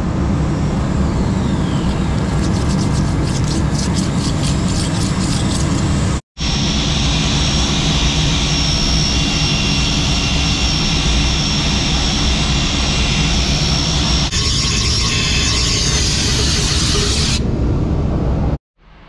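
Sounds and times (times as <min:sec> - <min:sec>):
electric drill boring into concrete: 0:06.4 - 0:17.4.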